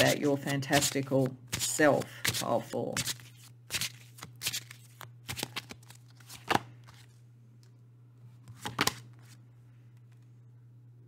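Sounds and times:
cards being shuffled: 0.0s - 7.2s, 8.4s - 9.4s
low steady hum: 0.0s - 11.0s.

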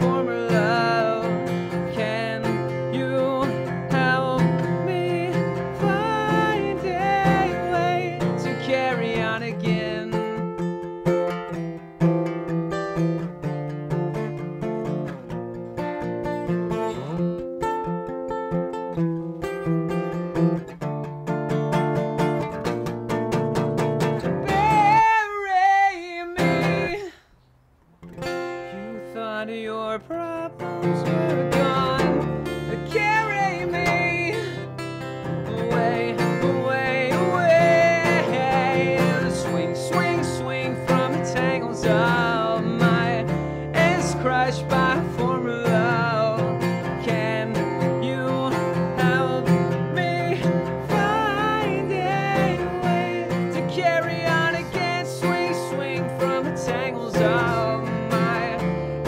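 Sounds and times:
man singing: 0.0s - 10.8s, 24.0s - 27.2s, 28.7s - 59.0s
acoustic guitar: 0.0s - 59.0s.

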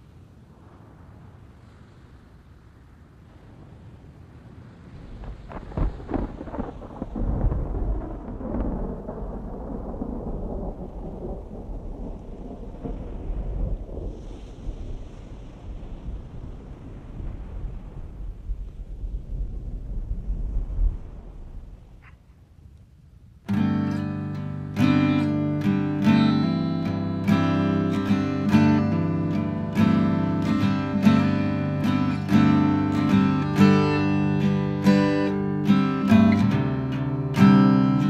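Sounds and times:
rain: 0.0s - 38.0s
thunder crack and rumble: 4.6s - 22.0s.

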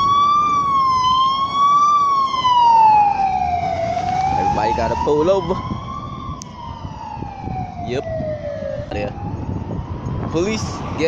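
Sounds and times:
police siren wailing: 0.0s - 11.0s.

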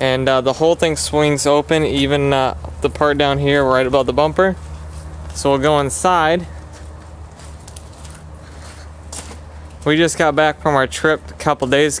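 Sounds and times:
steady low hum: 0.0s - 12.0s
footsteps on grass and gravel: 1.8s - 10.5s.

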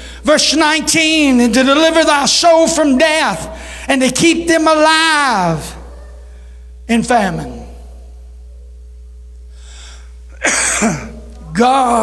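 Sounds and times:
sound system hum: 0.0s - 12.0s.

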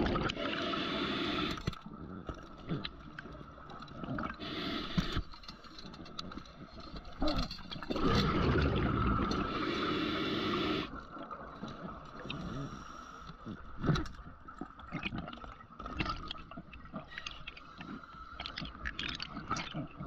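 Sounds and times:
underwater exhaled bubbles: 0.0s - 5.3s, 7.0s - 20.0s.

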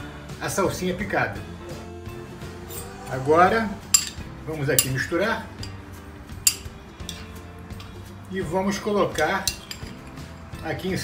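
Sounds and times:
faint background music: 0.0s - 11.0s
spoon clinking on glass bowl: 3.9s - 4.2s, 6.4s - 7.9s.

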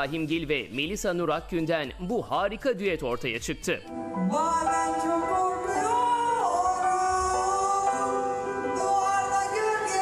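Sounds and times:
women singing duet: 3.0s - 10.0s.

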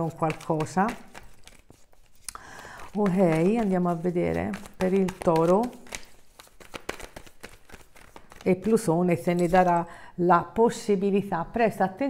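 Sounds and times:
cards being shuffled: 0.0s - 9.9s.

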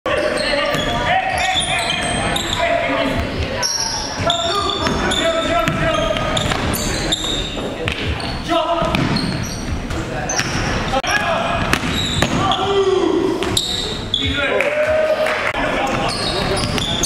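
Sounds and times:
sneaker squeaks: 0.1s - 14.4s, 15.9s - 17.0s
players' voices: 0.1s - 17.0s.

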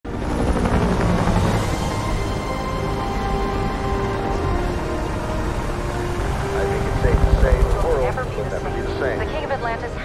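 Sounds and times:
faint steady score tones: 0.4s - 10.0s.

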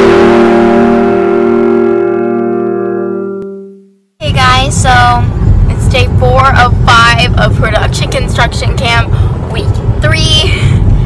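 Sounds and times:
music long held chord: 0.0s - 4.0s.

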